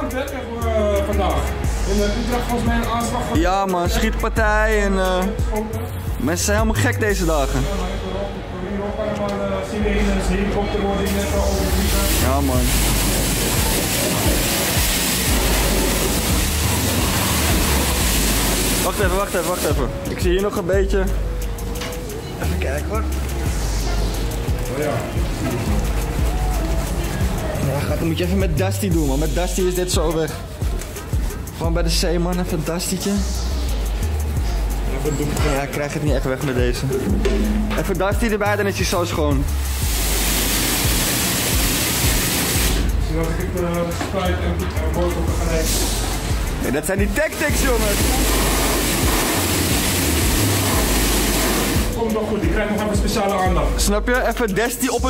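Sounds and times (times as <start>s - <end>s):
pressure washer spraying water: 11.1s - 20.1s, 39.4s - 43.0s, 45.5s - 52.0s.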